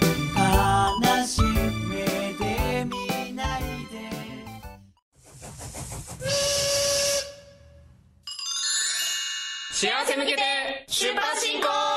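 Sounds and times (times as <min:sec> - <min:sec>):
steam locomotive chuffing: 0:05.2 - 0:07.6
steam whistle blast: 0:06.2 - 0:08.0
bright chime ringing: 0:08.2 - 0:09.8.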